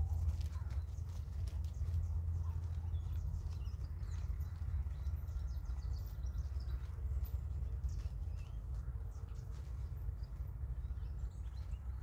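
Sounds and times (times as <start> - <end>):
horse hooves on arena surface: 0.0 - 12.0
steady low rumble: 0.0 - 12.0.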